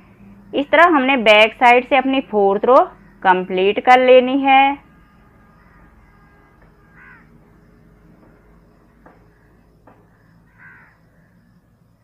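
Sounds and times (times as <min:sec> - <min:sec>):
crow cawing: 0:05.0 - 0:07.7, 0:08.6 - 0:11.5.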